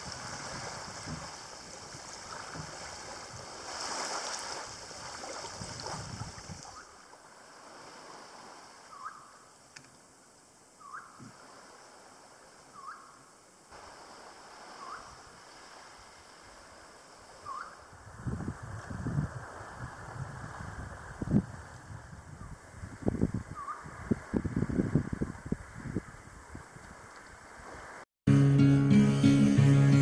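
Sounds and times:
small waves lapping on sand: 0:00.0 - 0:10.2, 0:10.9 - 0:28.0
faint high hiss: 0:00.0 - 0:18.6
bird whistled call: 0:08.9 - 0:09.4, 0:10.8 - 0:11.2, 0:12.7 - 0:13.2, 0:14.8 - 0:15.2, 0:17.4 - 0:17.8, 0:23.5 - 0:23.9.

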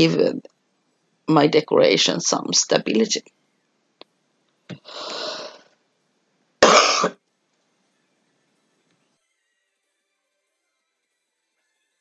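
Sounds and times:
woman coughing: 0:06.6 - 0:07.2.

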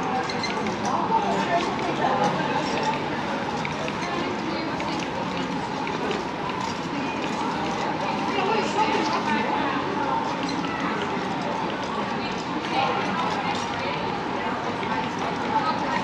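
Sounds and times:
passers-by talking: 0:00.0 - 0:16.0.

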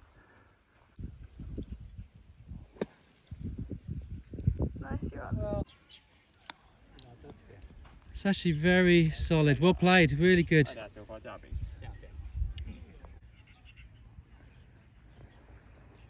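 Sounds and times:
wind buffeting microphone: 0:00.9 - 0:05.7.

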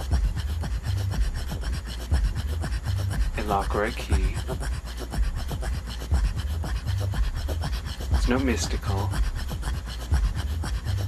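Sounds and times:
low grunting pulses: 0:00.0 - 0:11.0
rasping rhythmic breaths: 0:00.0 - 0:11.0.

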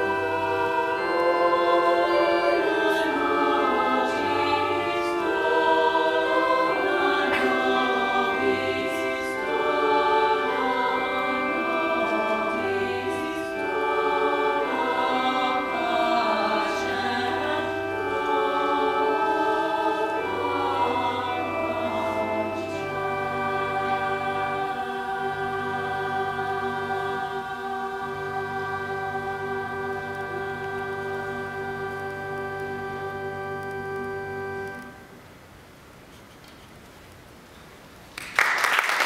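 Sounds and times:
women's choir singing: 0:00.0 - 0:31.6
organ chords: 0:00.0 - 0:35.8.

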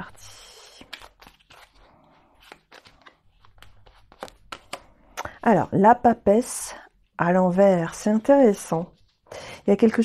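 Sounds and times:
cards shuffling: 0:00.6 - 0:05.0.

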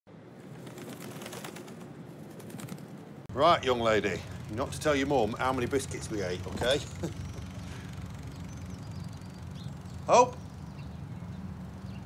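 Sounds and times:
birds calling: 0:00.4 - 0:12.0.

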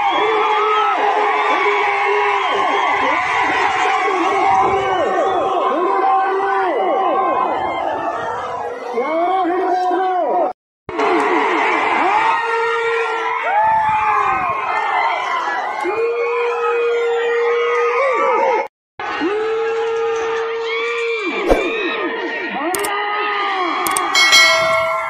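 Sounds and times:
crowd shouting and cheering: 0:00.0 - 0:25.0
long drawn-out yells: 0:00.1 - 0:10.0, 0:11.8 - 0:20.9.

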